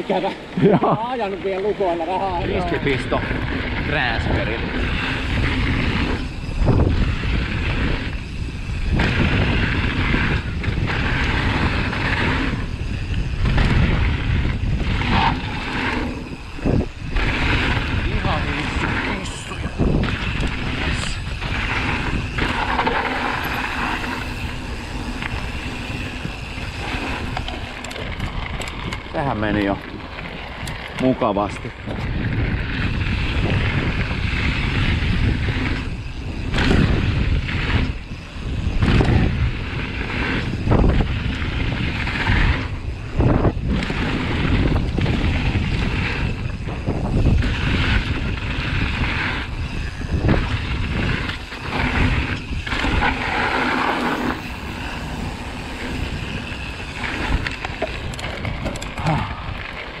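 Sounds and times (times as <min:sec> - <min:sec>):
bike rattling: 0:00.0 - 1:00.0
tyres rumbling on gravel: 0:00.0 - 1:00.0
wind buffeting microphone: 0:00.0 - 1:00.0.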